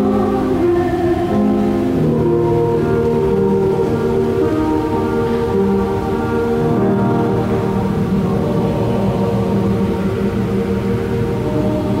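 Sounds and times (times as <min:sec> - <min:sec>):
choir accompaniment: 0:00.0 - 0:12.0
church choir singing: 0:00.0 - 0:12.0.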